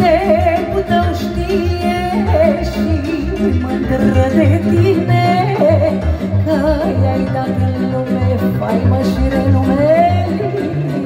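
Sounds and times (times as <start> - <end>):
violins: 0.0 - 11.0.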